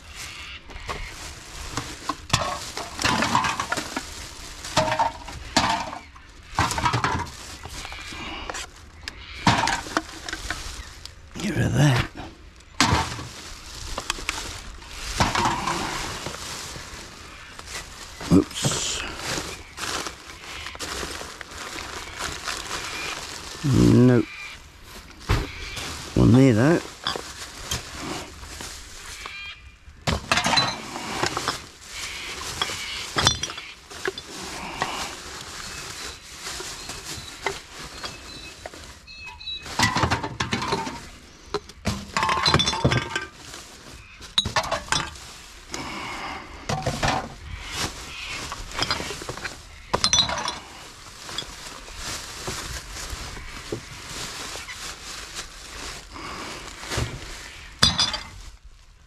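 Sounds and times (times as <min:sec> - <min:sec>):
plastic bags crinkling: 0:00.0 - 0:59.0
cans and bottles clinking: 0:01.7 - 0:08.0, 0:30.1 - 0:31.7, 0:32.4 - 0:35.0, 0:39.7 - 0:43.4, 0:44.4 - 0:45.3, 0:46.7 - 0:47.4, 0:48.3 - 0:51.6, 0:57.8 - 0:58.4.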